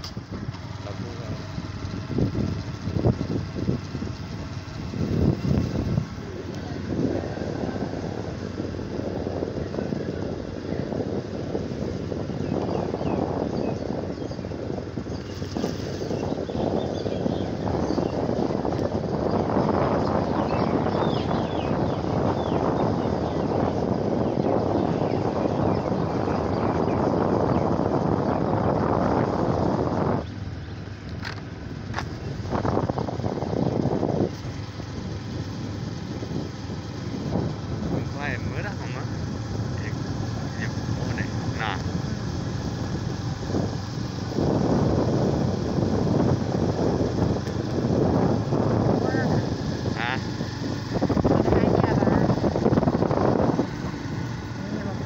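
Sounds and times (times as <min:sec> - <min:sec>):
small motorbike running: 0:00.0 - 0:55.0
wind rushing over microphone: 0:00.0 - 0:55.0.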